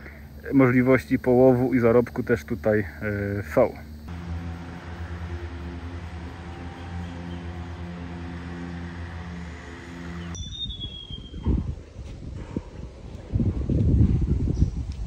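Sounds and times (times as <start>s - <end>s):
distant boat engine drone: 0.0s - 11.1s
high falling whistle: 4.4s - 11.8s.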